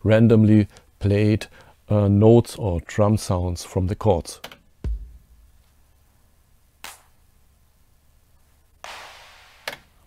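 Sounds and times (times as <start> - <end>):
noisy drum hit: 4.8 - 5.6
random drum hits: 4.8 - 5.6
short sharp drum hit: 4.8 - 5.6.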